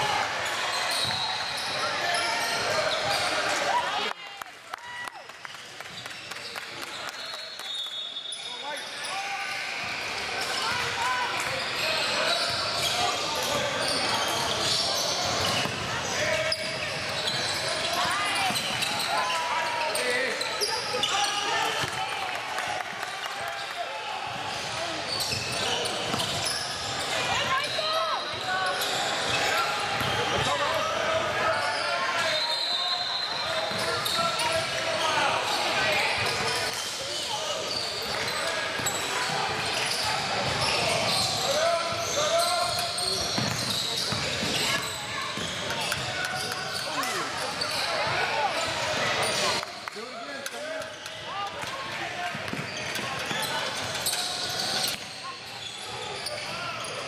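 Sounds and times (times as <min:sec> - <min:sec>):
people shouting and chattering: 0:00.0 - 0:57.0.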